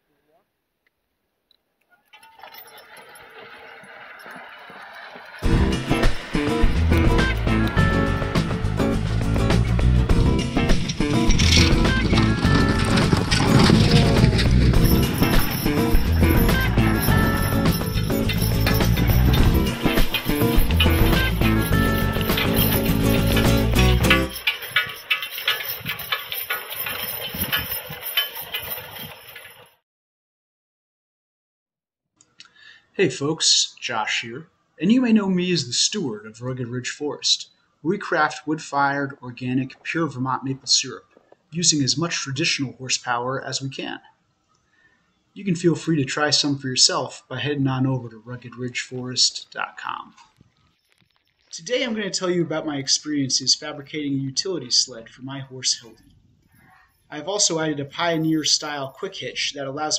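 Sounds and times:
harness and chains jingling: 0:02.2 - 0:29.8, 0:58.0 - 0:58.9.

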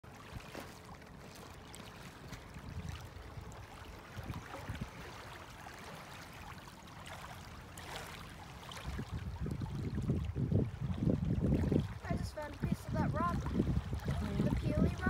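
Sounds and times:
wind rumbling on microphone: 0:02.3 - 0:05.4, 0:08.6 - 0:15.0.

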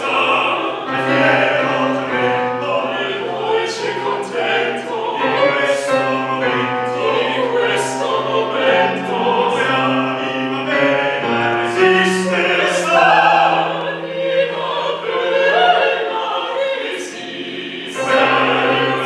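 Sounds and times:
opera singers singing together: 0:00.0 - 0:19.0.

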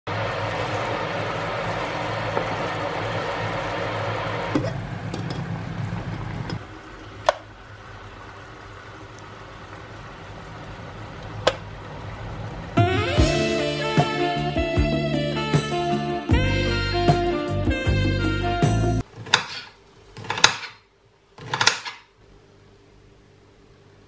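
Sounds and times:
sauce bubbling in a frying pan: 0:00.1 - 0:12.8.

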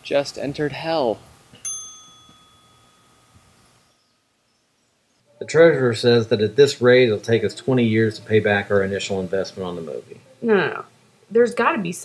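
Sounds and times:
small bell ding: 0:01.6 - 0:03.4.

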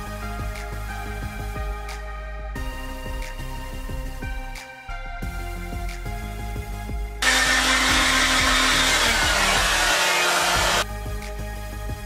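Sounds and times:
background music: 0:00.0 - 0:12.0
hair dryer blowing: 0:07.2 - 0:10.8.

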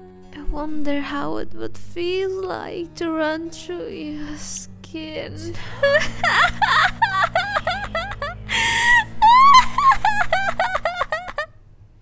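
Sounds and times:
woman laughing maniacally: 0:05.6 - 0:11.6
loud gasping breath: 0:08.4 - 0:09.1.

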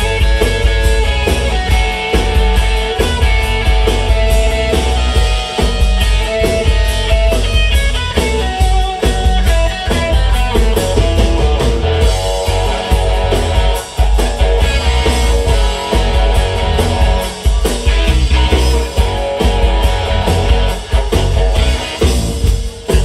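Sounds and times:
bass guitar: 0:00.0 - 0:23.0
drum kit: 0:00.0 - 0:23.0
electric guitar: 0:00.0 - 0:23.0.

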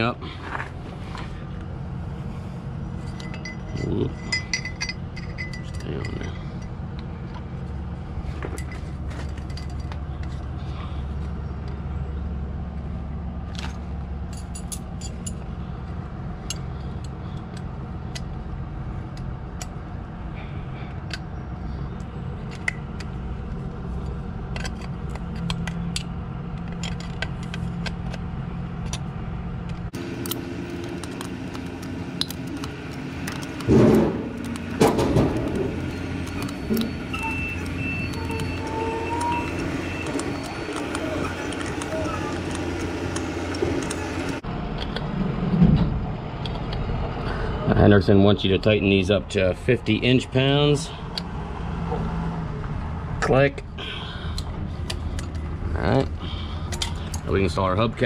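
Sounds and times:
engine humming: 0:00.0 - 0:58.0
metal tool clicks and clinks: 0:03.1 - 0:06.7, 0:14.3 - 0:15.4.

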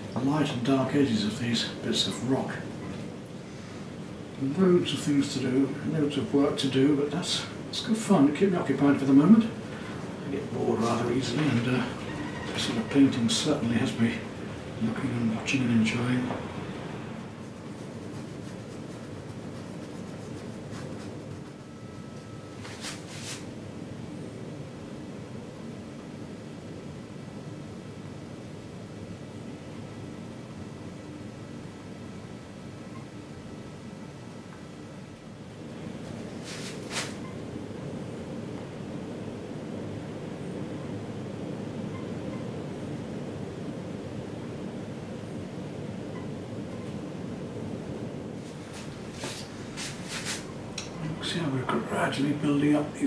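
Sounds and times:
low background noise: 0:00.0 - 0:53.0.

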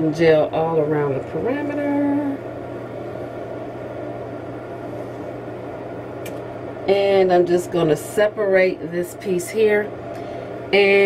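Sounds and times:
machine hum with hiss: 0:00.0 - 0:11.0.

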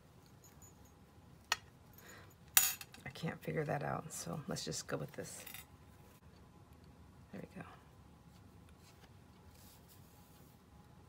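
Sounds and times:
small jingle bell clinking: 0:00.2 - 0:01.0.

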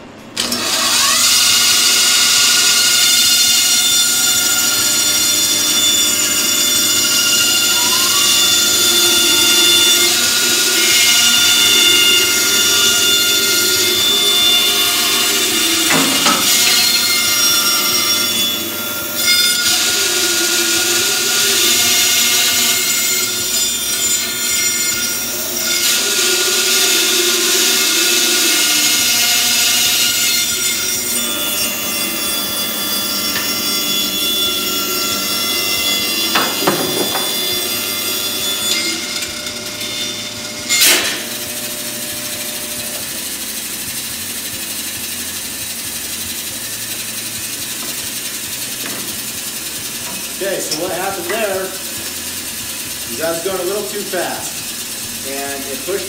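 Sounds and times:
motor rising whine: 0:00.0 - 0:23.8
bandsaw cutting wood: 0:00.4 - 0:56.0.

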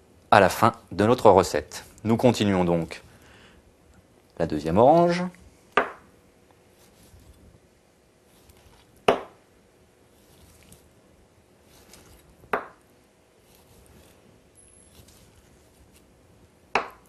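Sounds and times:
faint cutting sounds: 0:06.5 - 0:07.6, 0:08.2 - 0:09.1, 0:10.0 - 0:17.0.

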